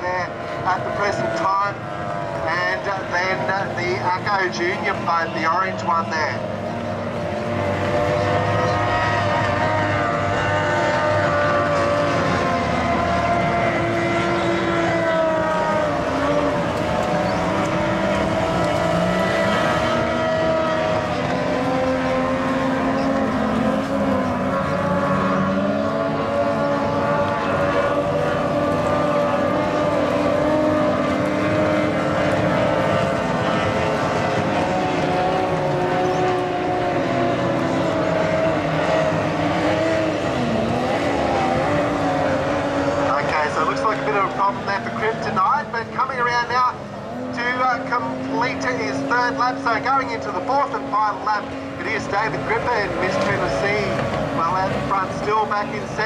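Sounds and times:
outboard engines at high revs: 0.0 - 56.0.

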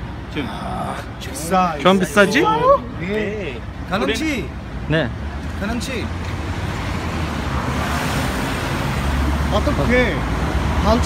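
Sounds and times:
low rumble of traffic: 0.0 - 11.0
vehicle passing close by: 6.3 - 11.0.

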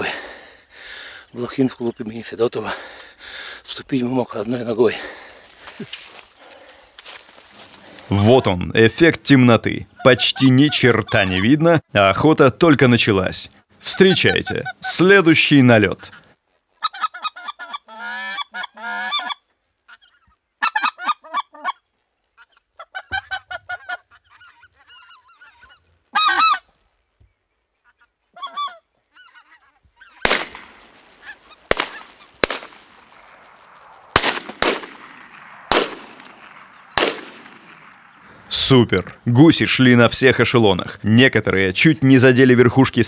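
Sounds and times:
geese honking: 10.0 - 11.7, 13.9 - 15.3, 15.9 - 26.8, 27.7 - 33.9
shotgun shots echoing: 30.2 - 31.0, 31.6 - 38.6.

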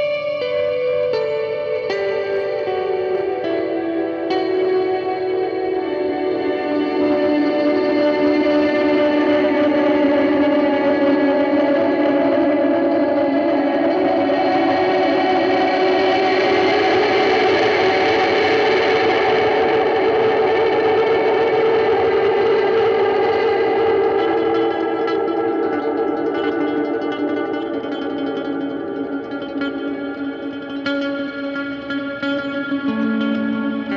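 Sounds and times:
electric guitar sustained notes: 0.0 - 33.9.

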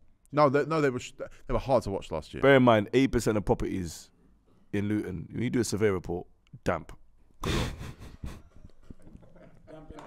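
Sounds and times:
breathy laughter: 7.4 - 9.6.

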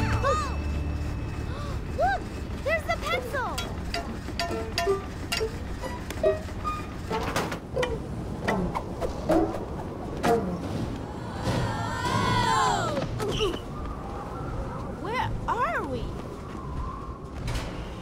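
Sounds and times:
background music: 0.0 - 2.4
continuous low rumble: 0.0 - 18.0
cartoon machine clicks and clanks: 2.2 - 8.6.

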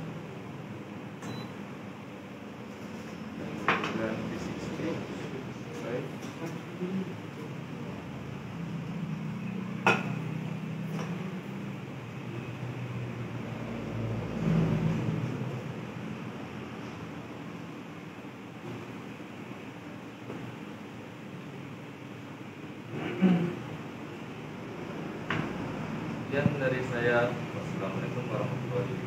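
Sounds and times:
low machine hum: 0.0 - 29.0.

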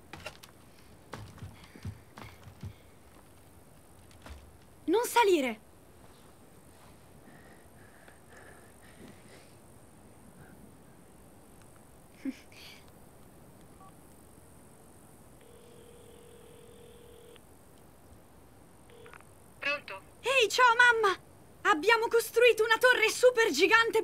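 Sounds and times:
phone ringback tone: 15.4 - 17.4.

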